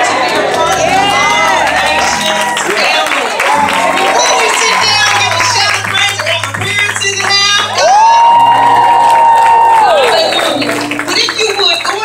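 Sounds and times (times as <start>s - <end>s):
congregation cheering: 0.0s - 12.0s.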